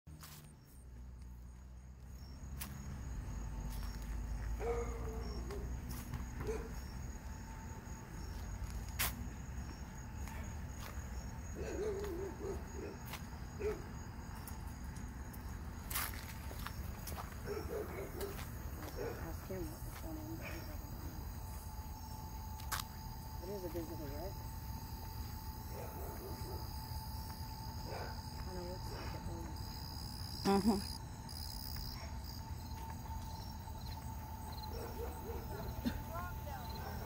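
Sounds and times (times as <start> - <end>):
crickets trilling: 0.2 - 37.0.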